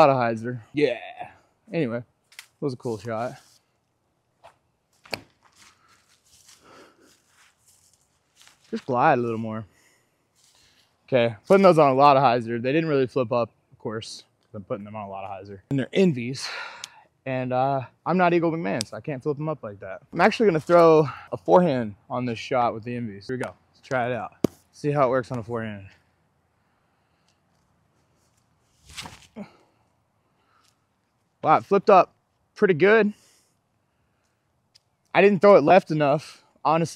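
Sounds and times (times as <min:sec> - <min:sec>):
faint scuffs and rustling: 0:02.3 - 0:03.8, 0:04.4 - 0:09.4, 0:10.3 - 0:11.6, 0:27.5 - 0:29.4.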